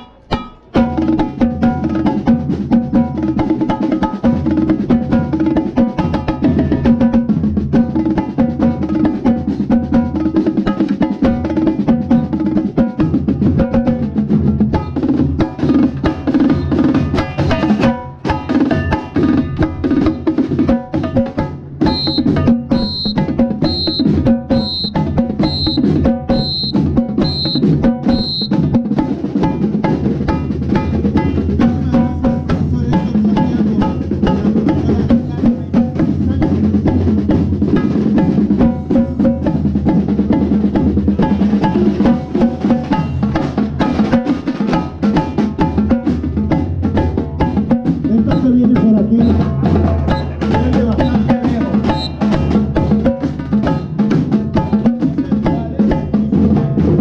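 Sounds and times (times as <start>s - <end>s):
high ping: 0.0s - 0.8s
marching drumline playing: 0.0s - 57.0s.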